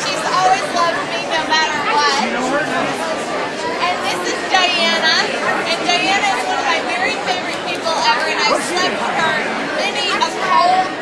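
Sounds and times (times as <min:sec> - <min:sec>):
bar chatter: 0:00.0 - 0:11.0
people talking over one another: 0:00.0 - 0:11.0.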